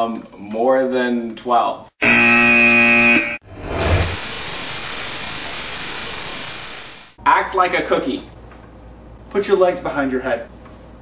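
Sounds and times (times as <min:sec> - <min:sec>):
wrong-answer buzzer: 0:02.0 - 0:03.4
rushing hiss: 0:03.8 - 0:07.2.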